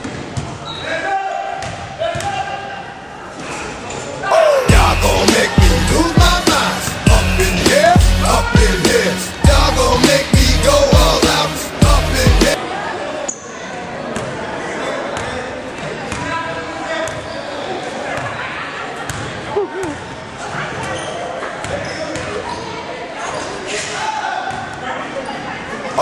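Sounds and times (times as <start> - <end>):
players' voices echoing: 0.0 - 20.8
background music: 4.4 - 12.6.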